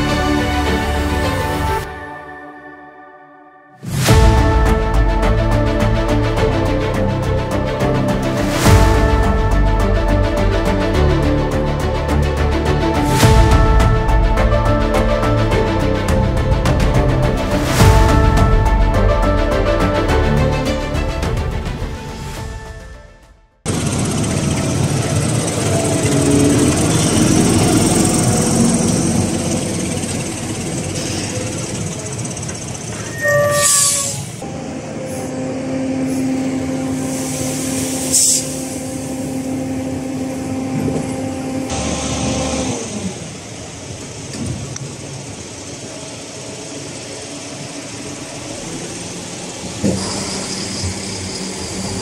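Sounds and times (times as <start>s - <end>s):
trailer rumbling and rattling: 0.0s - 2.2s, 3.8s - 52.0s
high whine: 23.7s - 52.0s
tractor diesel engine under load: 23.7s - 52.0s.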